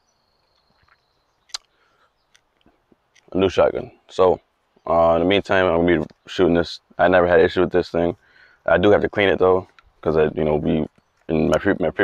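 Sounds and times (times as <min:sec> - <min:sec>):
sharp click: 0:01.5 - 0:01.7.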